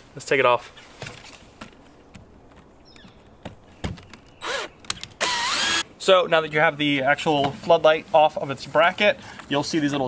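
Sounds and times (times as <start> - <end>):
cordless drill running: 4.4 - 5.8
drill clicks: 4.4 - 5.8.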